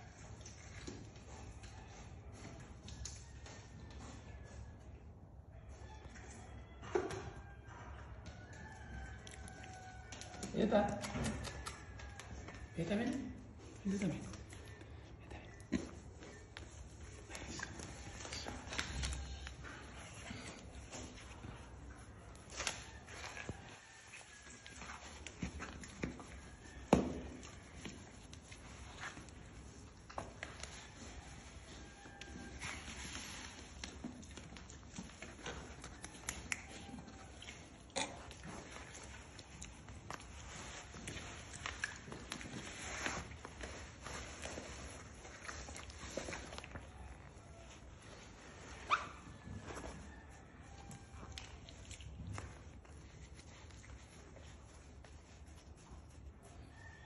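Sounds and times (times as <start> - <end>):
hooves tapping on tiled floor: 0.0 - 47.9.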